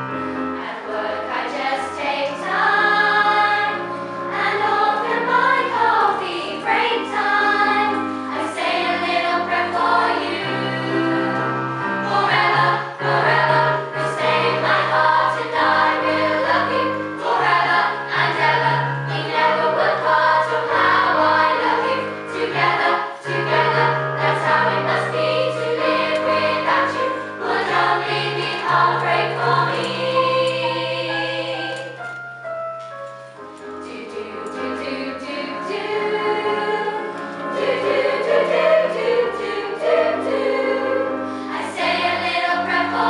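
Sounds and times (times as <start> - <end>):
sustained keyboard notes: 0.0 - 43.0
girls' choir singing: 0.1 - 32.0, 33.6 - 43.0.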